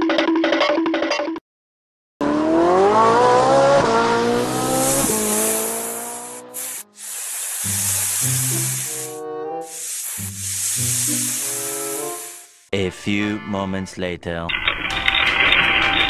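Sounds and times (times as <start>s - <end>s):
car engine revving: 2.2s - 7.0s.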